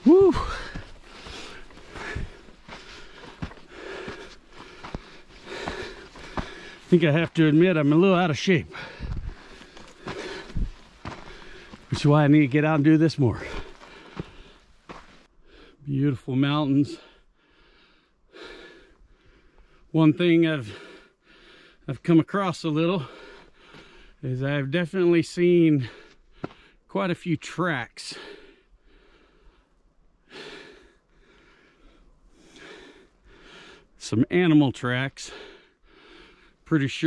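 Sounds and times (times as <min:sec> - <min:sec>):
footsteps in sand: 0:00.0 - 0:15.3
man breathing hard: 0:00.1 - 0:07.0, 0:08.6 - 0:11.9, 0:13.4 - 0:15.8, 0:17.0 - 0:19.9, 0:20.6 - 0:21.9, 0:23.0 - 0:24.2, 0:28.1 - 0:34.0, 0:35.2 - 0:36.6.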